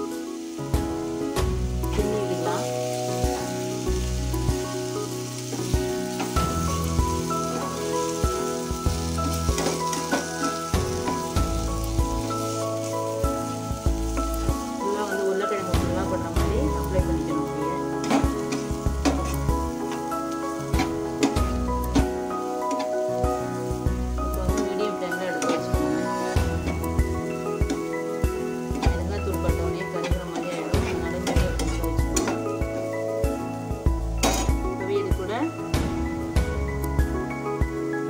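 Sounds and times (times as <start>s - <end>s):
background music: 0.0s - 38.0s
potatoes sizzling in oil: 0.0s - 38.0s.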